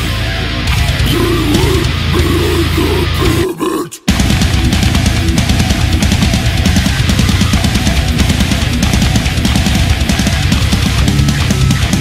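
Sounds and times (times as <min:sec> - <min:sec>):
death metal band playing: 0:00.0 - 0:12.0
guttural growled vocals: 0:01.0 - 0:04.1.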